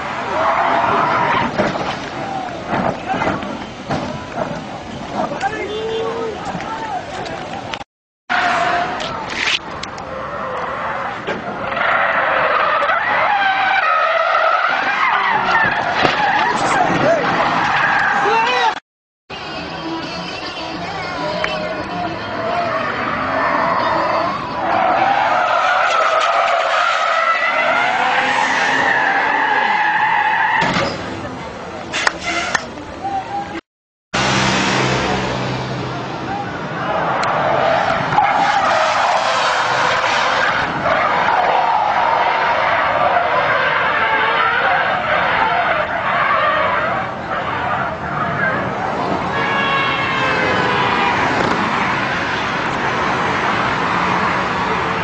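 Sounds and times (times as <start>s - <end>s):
car tyres squealing: 0.0s - 18.8s, 19.8s - 33.6s, 34.2s - 55.0s.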